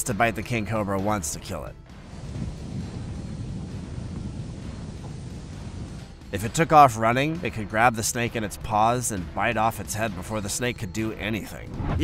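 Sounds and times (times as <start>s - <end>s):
wind buffeting microphone: 1.9s - 6.8s, 11.6s - 12.0s.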